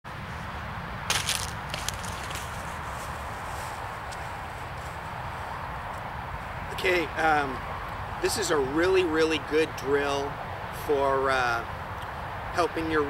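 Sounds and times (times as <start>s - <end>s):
low outdoor rumble: 0.1s - 13.0s
footsteps on dry leaves: 1.1s - 6.6s.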